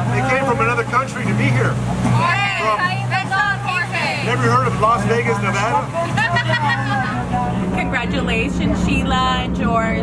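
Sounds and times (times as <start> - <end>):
boat engine humming: 0.0 - 10.0
people talking: 0.0 - 10.0.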